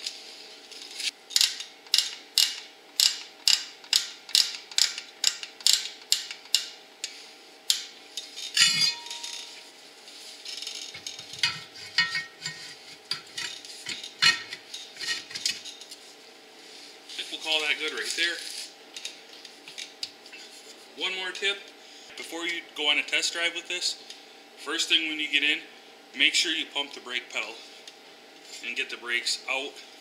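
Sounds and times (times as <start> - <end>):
metal scraping: 8.3 - 9.6, 10.5 - 15.7.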